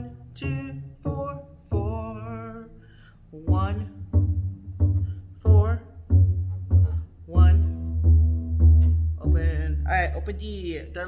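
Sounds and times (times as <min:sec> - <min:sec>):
person singing: 0:00.0 - 0:04.3, 0:05.4 - 0:06.0, 0:07.3 - 0:08.0, 0:09.2 - 0:10.2
double bass low notes: 0:00.0 - 0:11.0.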